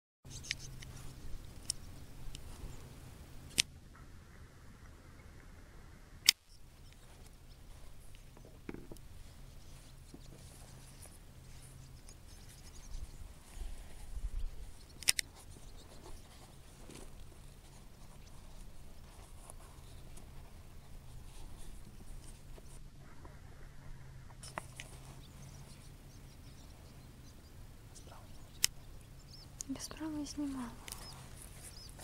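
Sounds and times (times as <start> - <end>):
swallows twittering: 0.3 - 3.0, 10.5 - 16.8, 24.4 - 32.0
low steady hum: 0.3 - 32.0
camera handling clicks: 15.0 - 15.3.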